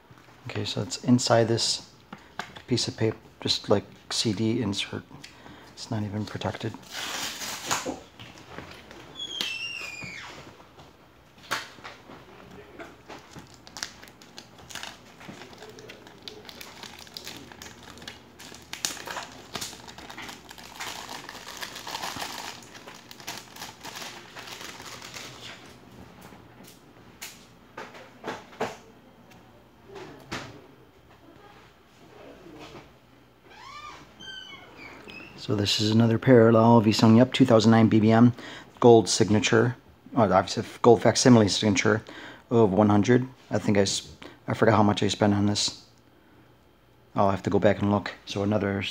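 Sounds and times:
short falling squeak: 9.2s - 10.4s
packaging rustling: 13.0s - 25.8s.

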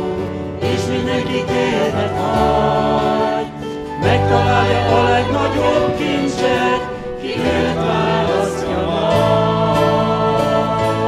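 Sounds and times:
acoustic guitar: 0.0s - 11.0s
group singing a hymn: 0.0s - 11.0s
wind instruments: 1.7s - 11.0s.

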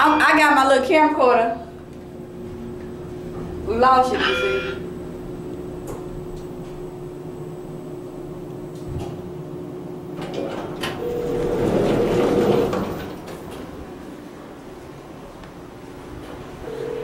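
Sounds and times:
elevator cabin hum: 0.0s - 17.0s
short held elevator tone: 4.0s - 4.9s, 11.0s - 12.1s
elevator doors sliding open: 10.1s - 14.6s.

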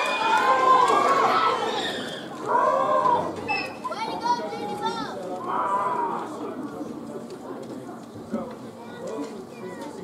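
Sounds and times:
young voices chattering: 0.6s - 10.0s.

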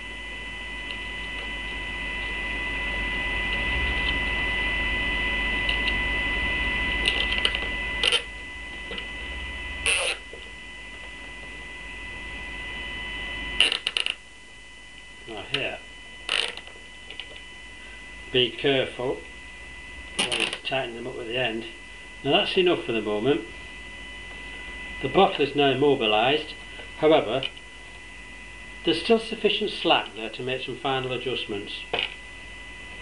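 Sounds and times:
electrical hum and whine: 0.0s - 33.0s.

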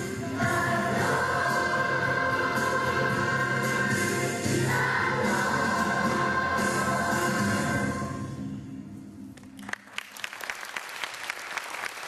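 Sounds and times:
children's choir singing: 0.0s - 8.2s.

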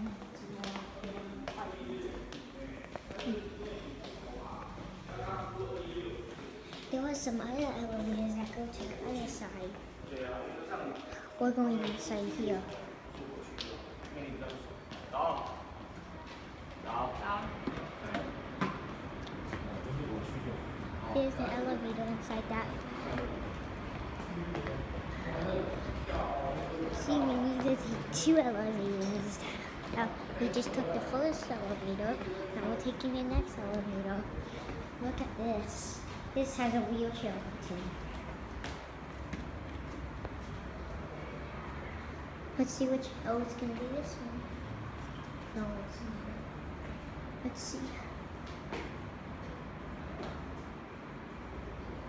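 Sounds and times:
voices: 0.0s - 51.6s
background noise: 0.0s - 52.0s.

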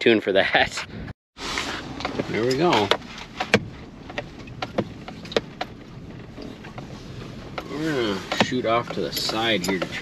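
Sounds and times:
low engine and road hum: 1.4s - 10.0s
sharp clicks and knocks: 2.0s - 10.0s.

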